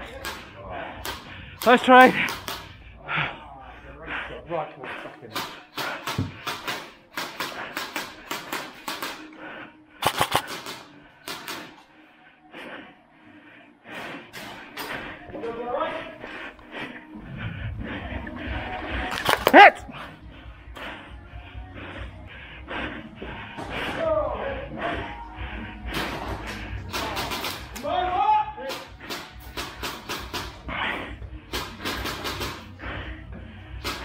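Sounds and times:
airsoft guns firing: 0:10.0 - 0:11.8, 0:19.1 - 0:19.7, 0:26.9 - 0:27.8, 0:28.7 - 0:30.6, 0:31.5 - 0:32.7.

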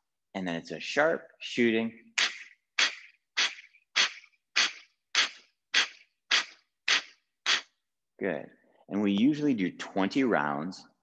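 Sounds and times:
forceful nasal exhales: 0:02.2 - 0:07.8.

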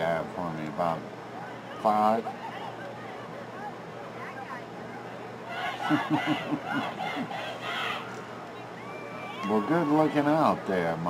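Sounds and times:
man laughing: 0:05.8 - 0:07.4.

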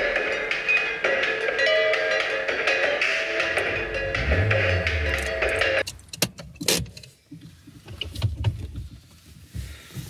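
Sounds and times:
background music: 0:00.0 - 0:05.8
faint low rumble: 0:03.4 - 0:05.8
handling clicks and knocks in car: 0:05.8 - 0:09.3.

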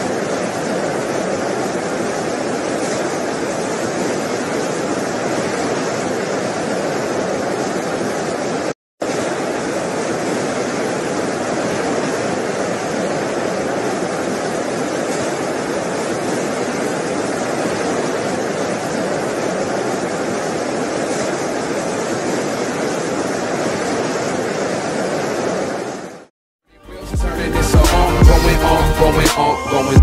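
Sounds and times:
surf and storm wind rushing: 0:00.0 - 0:26.3.

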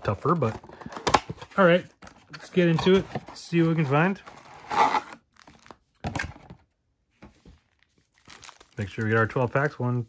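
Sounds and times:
foil packs crinkling: 0:07.7 - 0:09.8.

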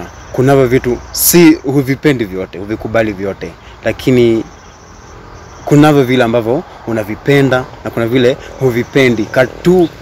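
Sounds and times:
man speaking: 0:00.0 - 0:04.6, 0:05.6 - 0:10.0
cricket trilling: 0:00.0 - 0:10.0.

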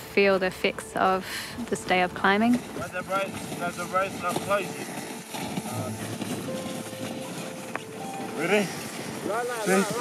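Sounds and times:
footsteps crunching on snow: 0:01.7 - 0:10.0.

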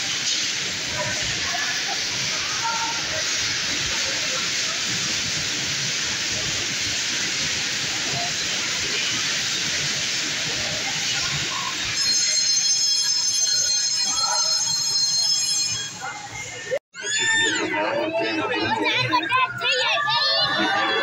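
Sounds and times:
bumper car ride hiss: 0:00.0 - 0:12.5.

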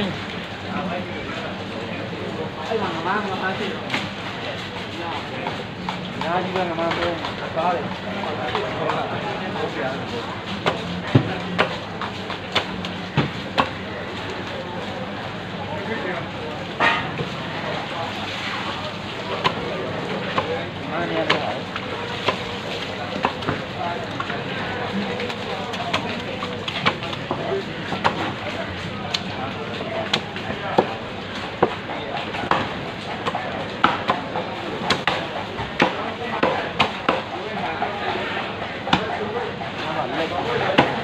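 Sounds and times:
busy market background: 0:00.0 - 0:41.0
voices talking: 0:00.0 - 0:41.0
cleaver chopping: 0:21.2 - 0:21.6, 0:34.9 - 0:35.2, 0:35.8 - 0:37.3.

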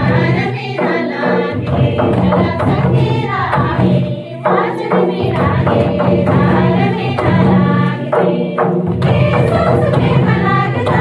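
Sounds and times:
group singing in chorus: 0:00.0 - 0:11.0.

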